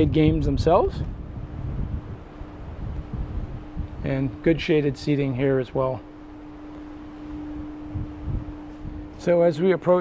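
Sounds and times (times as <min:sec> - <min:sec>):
machine hum: 0:00.0 - 0:10.0.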